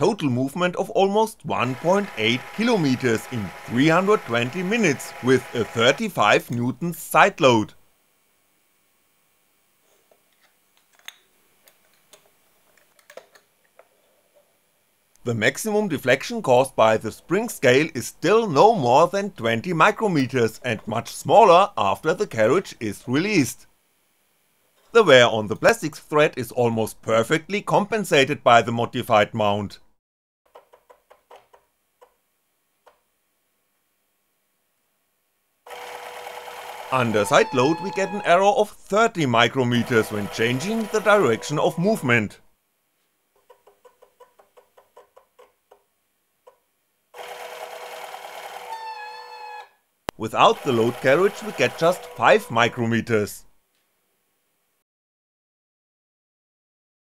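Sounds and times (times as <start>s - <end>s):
small electric motor humming: 1.6s - 6.2s, 35.7s - 38.1s, 39.8s - 41.6s, 47.2s - 49.7s, 50.4s - 52.4s.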